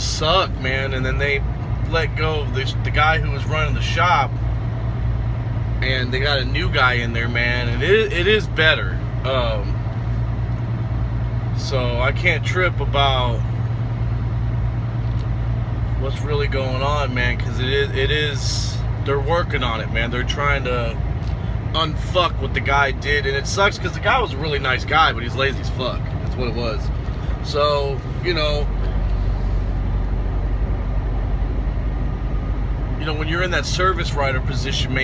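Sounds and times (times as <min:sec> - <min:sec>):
cab noise rumble: 0:00.0 - 0:35.0
truck diesel engine running: 0:00.0 - 0:35.0.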